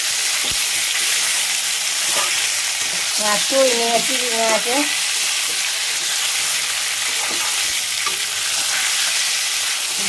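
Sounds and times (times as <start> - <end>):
food sizzling in hot oil: 0.0 - 10.0.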